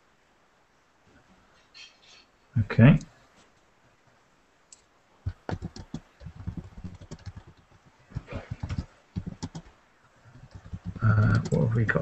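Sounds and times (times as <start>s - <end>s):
keyboard typing clicks: 5.2s - 9.7s, 10.3s - 11.7s.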